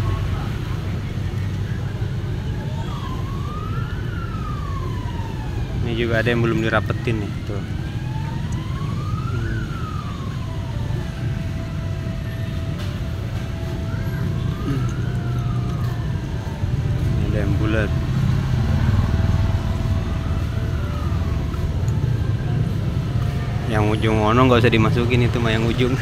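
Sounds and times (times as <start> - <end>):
distant siren wailing: 0.0 - 26.0
low rumble of road traffic: 0.0 - 26.0.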